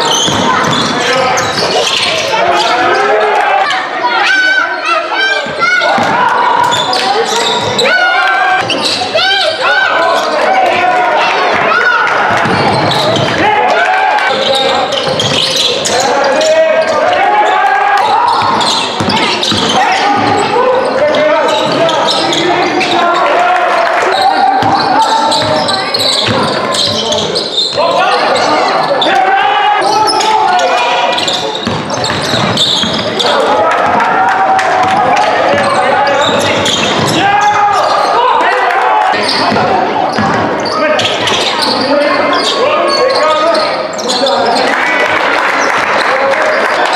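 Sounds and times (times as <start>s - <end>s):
voices calling out echoing: 0.0s - 46.9s
basketball bouncing on hard floor: 12.3s - 13.3s, 31.6s - 33.1s.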